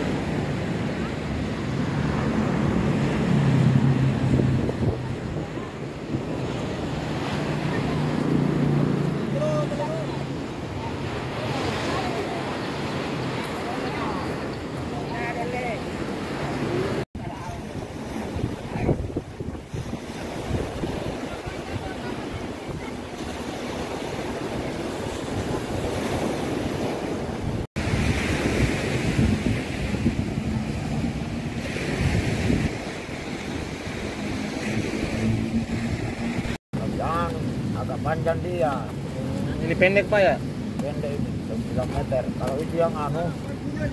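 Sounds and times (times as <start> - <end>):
surf washing onto shore: 0.0 - 43.9
wind buffeting microphone: 0.0 - 43.9.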